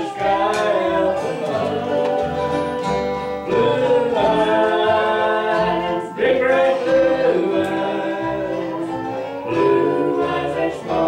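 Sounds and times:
acoustic guitar: 0.0s - 11.0s
upright bass: 0.0s - 11.0s
voices singing in harmony: 0.0s - 11.0s.

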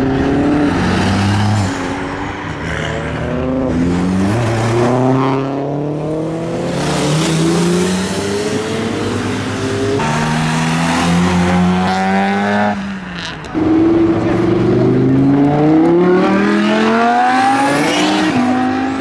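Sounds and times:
car engines accelerating: 0.0s - 19.0s
engine revving: 13.5s - 19.0s.

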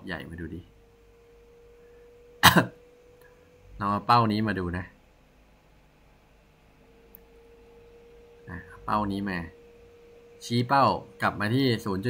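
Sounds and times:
man speaking: 0.0s - 0.7s, 3.8s - 5.0s, 8.5s - 9.5s, 10.4s - 12.0s
man clearing throat: 2.4s - 2.8s.

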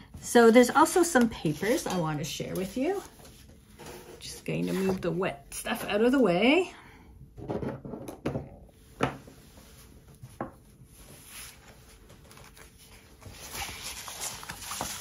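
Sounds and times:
paper rustling and sliding: 0.9s - 5.0s, 11.0s - 15.0s
objects knocking on wooden table: 7.4s - 9.3s.

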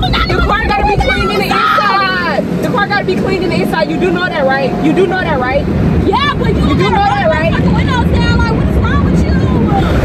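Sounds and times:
people talking excitedly: 0.0s - 10.0s.

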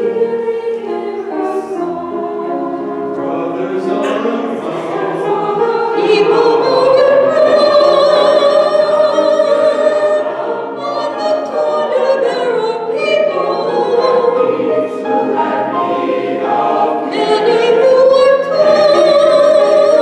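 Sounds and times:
mixed choir singing chords: 0.0s - 20.0s.

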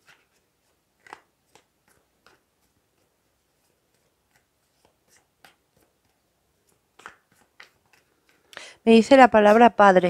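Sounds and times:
person speaking: 8.6s - 10.0s.

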